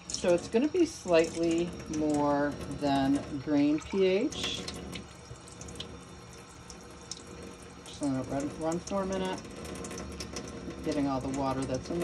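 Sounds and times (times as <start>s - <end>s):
water running into steel sink: 0.0s - 12.0s.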